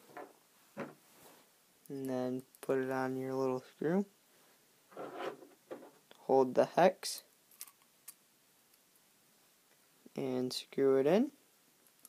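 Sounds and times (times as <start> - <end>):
soft rustle of handling: 0.0 - 6.1
tool scraping on table: 4.9 - 6.0.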